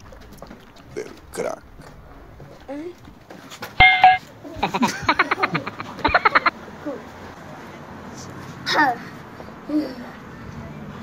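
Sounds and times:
cartoon sound effect with held tone: 3.8 - 4.2
fast high cartoon laughter: 4.6 - 6.5.

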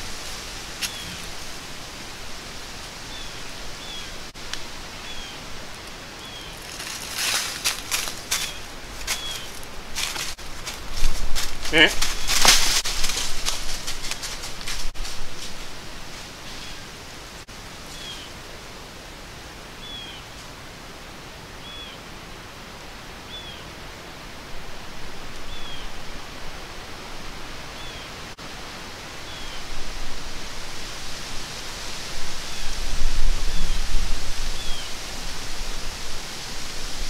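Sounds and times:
wind through bare woods: 0.0 - 37.0
small bird chirping: 8.4 - 9.6
wind buffeting microphone: 29.7 - 37.0.

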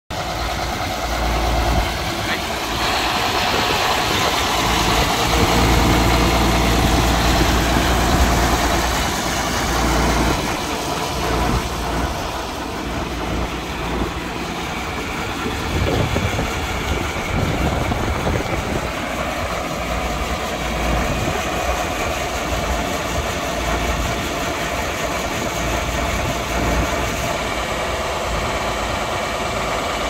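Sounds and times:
tractor diesel engine idling: 0.1 - 30.0.

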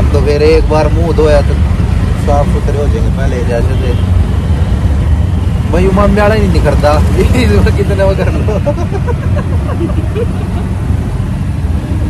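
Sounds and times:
vehicle engine and road rumble: 0.0 - 12.0
people laughing: 7.9 - 10.8.

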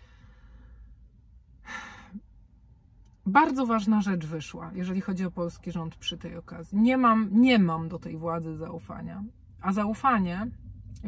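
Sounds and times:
woman breathing in: 0.0 - 1.0
woman talking: 3.2 - 11.0.

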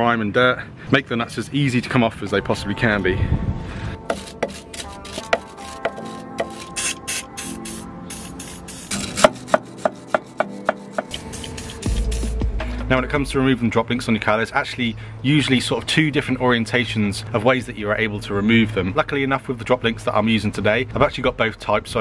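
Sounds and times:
background music: 2.1 - 14.2
wire brush scraping metal: 4.1 - 12.3.

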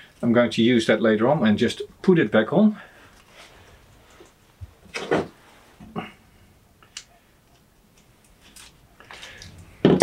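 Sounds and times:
wire rustling and handling: 3.0 - 6.0, 6.8 - 10.0.

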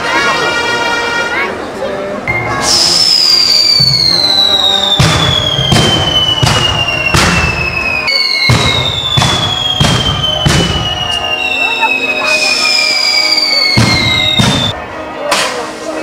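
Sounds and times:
falling firework whistle: 2.6 - 14.8
firework bangs: 2.6 - 15.8.

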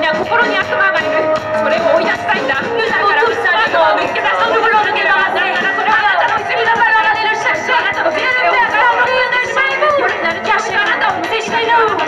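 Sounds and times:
several voices through sound system: 0.0 - 12.0.

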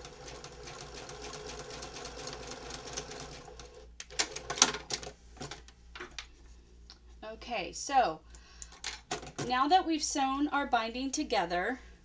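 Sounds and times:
woman speaking: 7.2 - 8.2, 9.4 - 11.9.

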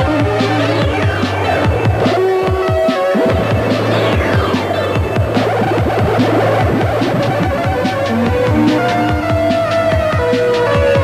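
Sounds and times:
synthesizer drone: 0.0 - 11.0
electronic drum hits dropping in pitch: 1.4 - 10.9.

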